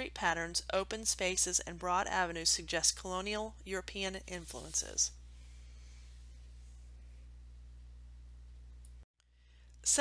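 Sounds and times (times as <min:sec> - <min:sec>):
person speaking: 0:00.0 - 0:05.1
faint electrical hum: 0:00.0 - 0:10.0.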